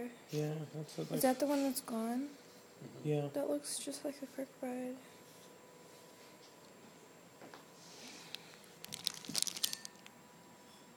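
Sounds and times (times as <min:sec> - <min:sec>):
book pages rustling: 0:08.3 - 0:10.0
crisp paper crackles: 0:08.3 - 0:10.1.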